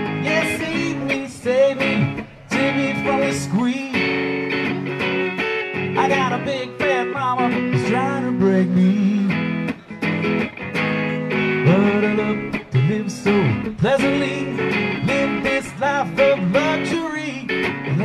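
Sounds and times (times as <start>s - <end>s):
bending electric guitar: 0.0s - 18.0s
live rock band: 0.0s - 18.0s.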